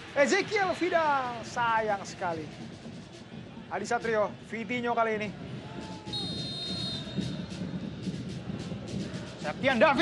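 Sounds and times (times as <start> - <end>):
stadium crowd noise: 0.0 - 10.0
high whistle-like tone: 6.0 - 7.6.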